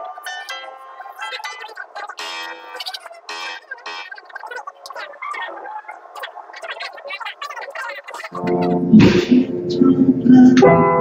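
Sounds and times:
voices chattering and laughing: 0:00.0 - 0:09.0.

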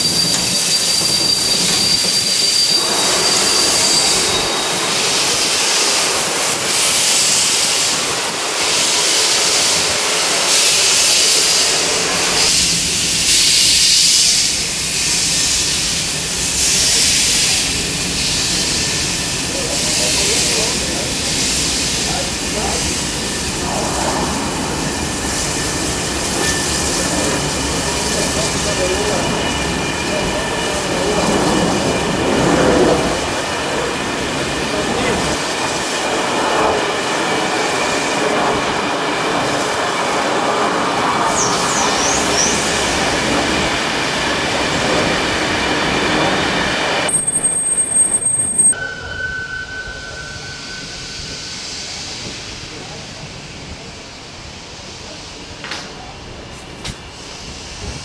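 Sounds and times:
train wheels squealing on rails: 0:00.0 - 0:58.0.

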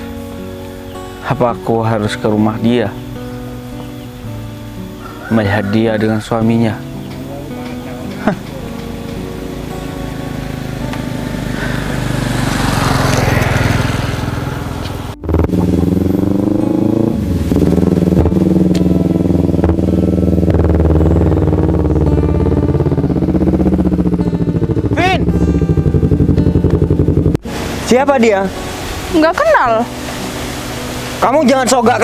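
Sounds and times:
motorcycle engine running: 0:06.8 - 0:32.0.

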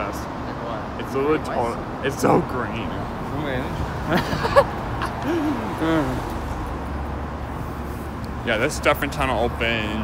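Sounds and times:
road traffic rumble in tunnel: 0:00.0 - 0:10.0
person making wordless vocal sounds: 0:05.1 - 0:06.4.

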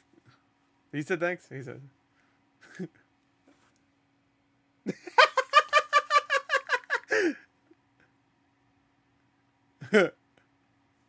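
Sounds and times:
man giggling: 0:02.6 - 0:03.1, 0:04.9 - 0:07.5, 0:09.8 - 0:10.4.

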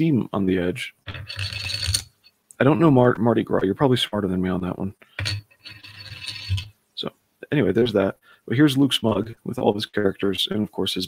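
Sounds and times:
metal token scraping on wooden desk: 0:01.1 - 0:02.3, 0:05.2 - 0:06.7.

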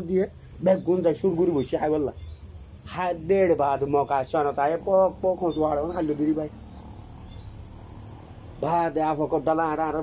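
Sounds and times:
man talking: 0:00.0 - 0:02.2, 0:02.9 - 0:06.6, 0:08.6 - 0:10.0
crickets chirping: 0:00.0 - 0:10.0.

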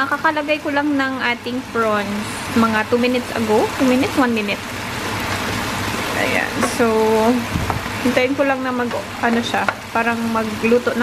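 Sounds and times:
prawns sizzling in a frying pan: 0:00.0 - 0:11.0
spatula stirring in pan: 0:04.7 - 0:10.6.

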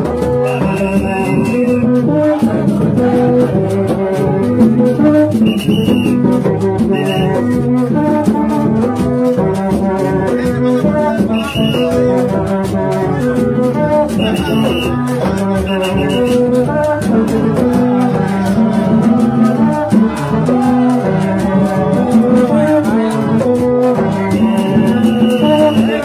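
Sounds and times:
rattling percussion: 0:00.0 - 0:26.0
high whistle blown: 0:00.4 - 0:02.0, 0:05.3 - 0:06.3, 0:06.9 - 0:07.5, 0:11.3 - 0:12.1, 0:14.1 - 0:15.0, 0:15.6 - 0:16.5, 0:24.3 - 0:26.0.

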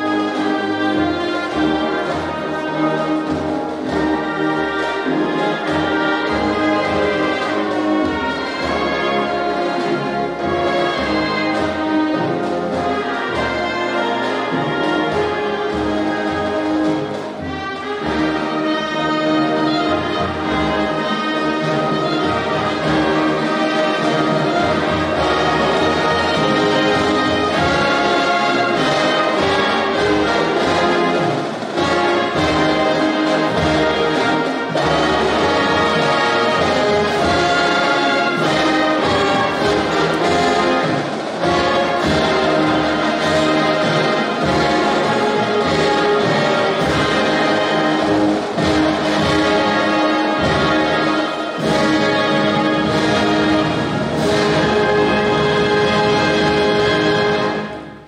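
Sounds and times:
concert band playing: 0:00.0 - 0:58.0.

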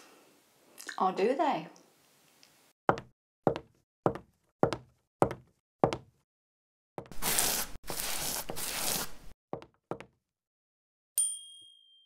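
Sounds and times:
footsteps double knocks: 0:02.9 - 0:06.1.

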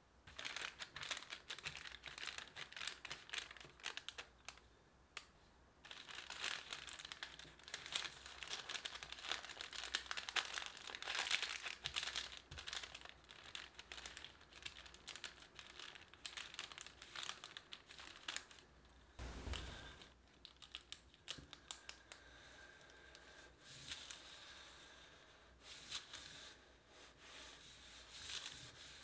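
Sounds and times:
parchment paper crinkling: 0:00.2 - 0:22.3, 0:27.9 - 0:29.0.

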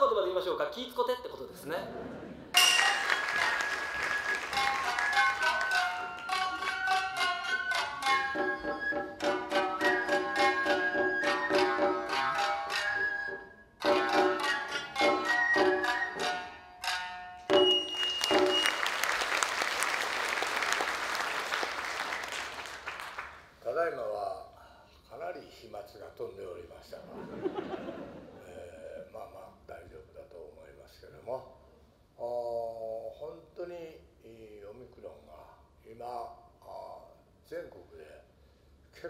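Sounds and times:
audience applause: 0:02.6 - 0:06.7, 0:17.8 - 0:23.5
plucked shamisen music: 0:02.6 - 0:18.8.

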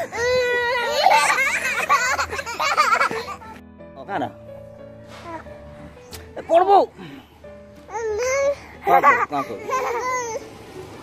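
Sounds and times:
small child crying: 0:00.0 - 0:03.4, 0:07.9 - 0:10.5
background music: 0:00.0 - 0:11.0.

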